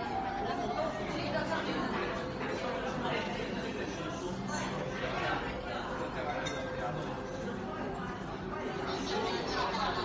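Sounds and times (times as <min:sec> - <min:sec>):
chatter of many diners: 0:00.0 - 0:10.0.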